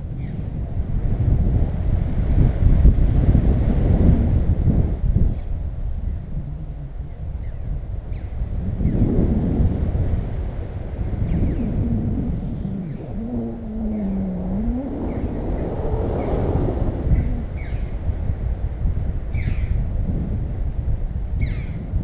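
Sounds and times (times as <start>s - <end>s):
wind buffeting microphone: 0.0s - 22.0s
low wavering tone: 11.2s - 18.0s.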